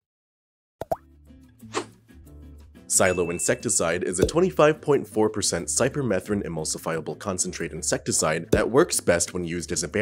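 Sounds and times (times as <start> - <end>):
pop with pitch glide: 0.8 - 1.1
soft background music: 0.9 - 10.0.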